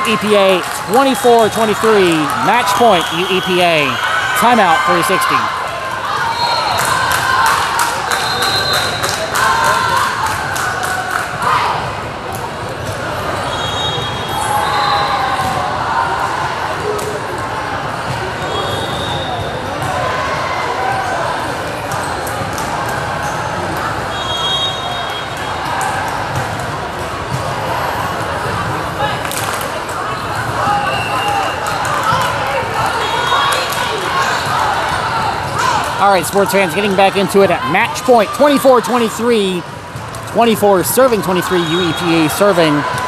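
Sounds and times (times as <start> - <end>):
chatter of voices in hall: 0.0 - 43.0.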